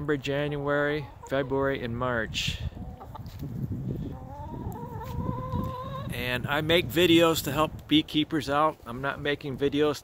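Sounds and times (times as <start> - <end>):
wind rumble on microphone: 1.7 - 8.4
hen calling: 4.1 - 6.2.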